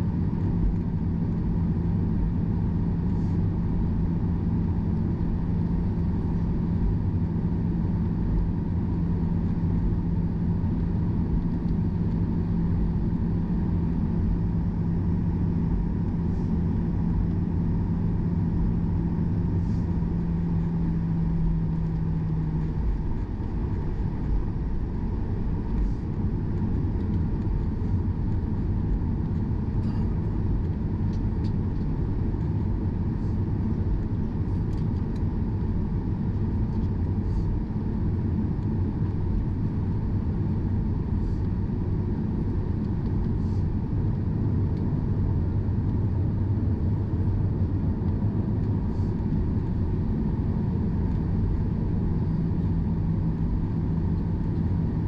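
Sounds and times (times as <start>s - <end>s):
airplane taxiing rumble: 0.0s - 55.0s
steady hum: 0.0s - 55.0s.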